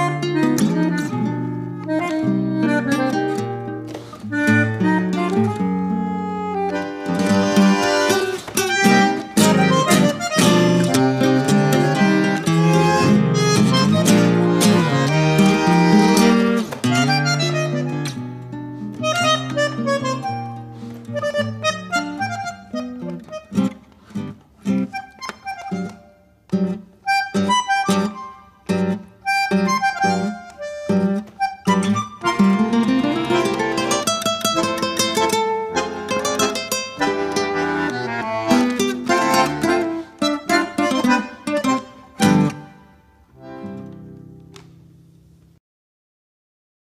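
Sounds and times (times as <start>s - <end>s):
bandoneon: 0.0s - 44.2s
classical guitar: 0.0s - 45.6s.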